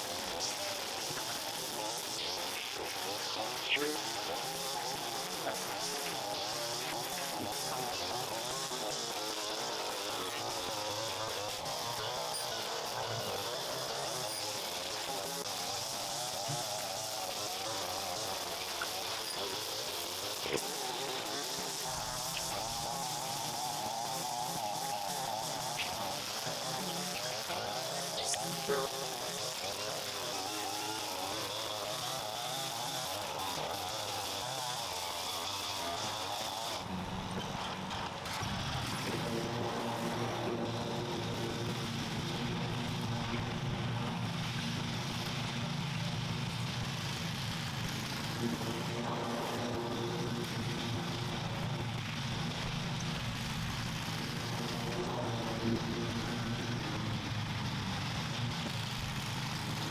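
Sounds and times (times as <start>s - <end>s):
lawn mower engine running: 0.0s - 59.9s
string trimmer whining: 0.0s - 59.9s.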